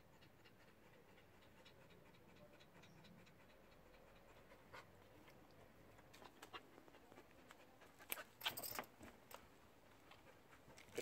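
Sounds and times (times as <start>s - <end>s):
dog panting: 0.0s - 8.7s, 9.8s - 11.0s.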